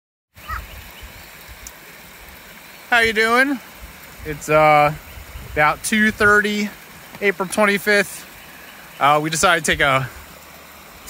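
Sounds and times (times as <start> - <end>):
faint bird chirps: 0.4 - 1.4
low microphone rumble: 3.8 - 6.4.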